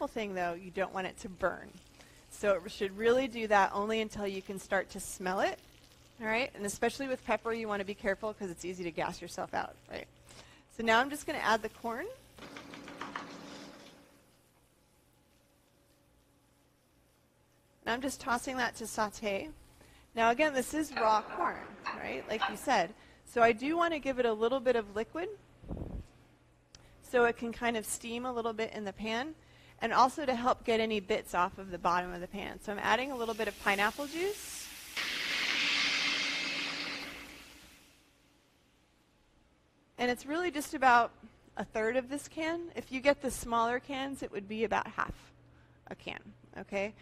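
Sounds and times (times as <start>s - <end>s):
corn kernels sizzling in oil: 0.7s - 17.1s, 32.7s - 38.6s
liquid hissing in hot pan: 32.9s - 38.2s.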